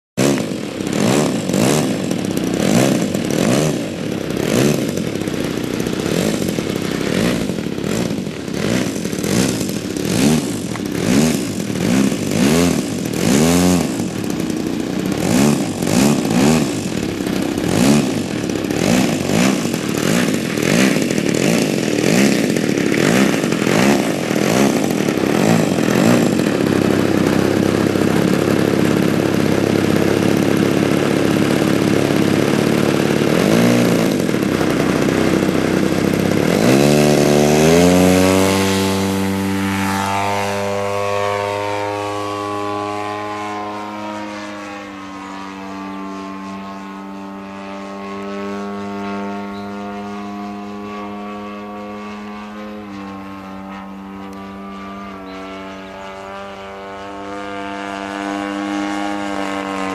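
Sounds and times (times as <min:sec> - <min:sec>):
model plane engine revving: 0:00.2 - 0:59.9.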